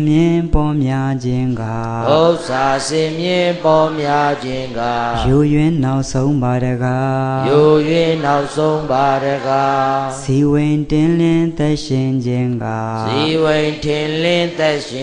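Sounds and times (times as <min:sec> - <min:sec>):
man chanting: 0:00.0 - 0:15.0.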